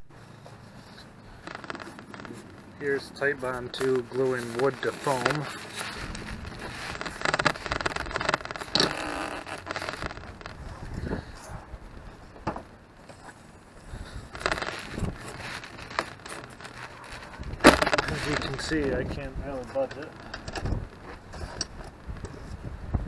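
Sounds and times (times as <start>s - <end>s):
handling noise: 0.1s - 22.3s
wood block scraping and crackling: 0.3s - 22.6s.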